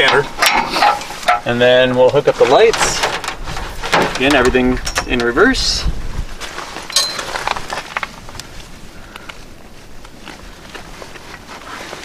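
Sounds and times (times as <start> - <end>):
tow hitch handling noise: 0.0 - 5.5
light metallic clinks: 6.9 - 7.3.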